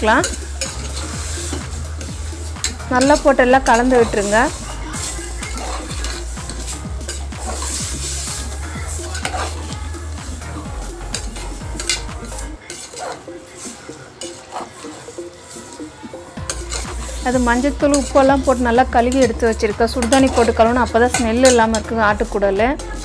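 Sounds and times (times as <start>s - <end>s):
light oil sizzle: 0.0s - 10.5s
metal ladle scraping a pot: 0.2s - 9.8s, 11.1s - 15.7s, 16.4s - 21.8s.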